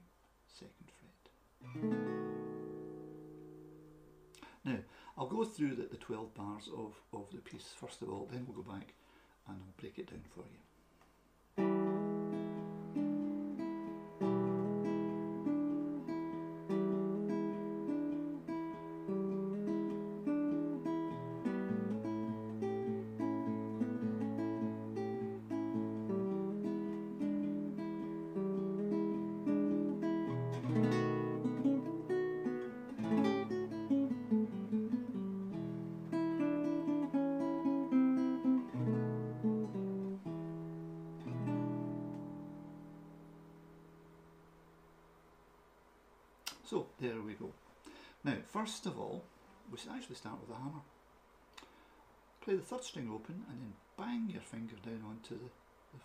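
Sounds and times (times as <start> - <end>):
fingerstyle acoustic guitar blues: 1.6 - 4.3, 11.6 - 43.5
strummed guitar chords: 11.6 - 43.9.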